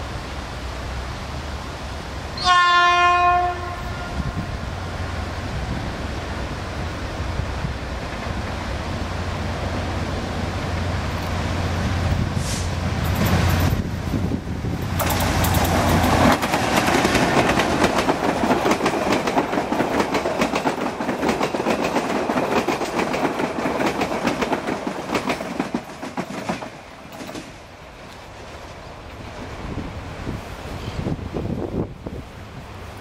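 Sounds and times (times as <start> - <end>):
locomotive engine rumble: 3.8 - 21.2
train wheels clicking over rail joints: 7.9 - 29.5.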